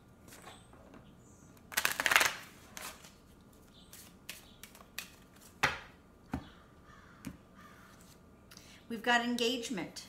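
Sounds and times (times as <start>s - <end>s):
cards drawn from deck: 1.7s - 3.2s, 3.8s - 5.6s.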